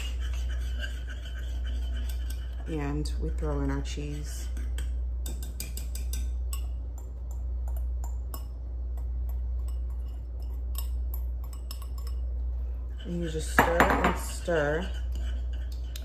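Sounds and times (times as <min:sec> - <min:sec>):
steady low hum: 0:00.0 - 0:16.0
glass and whisk clinking on pot: 0:04.4 - 0:06.8, 0:13.0 - 0:16.0.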